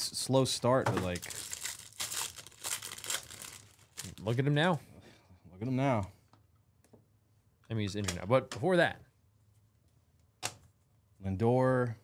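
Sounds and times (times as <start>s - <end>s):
foil wrapper crinkling: 1.1s - 4.5s.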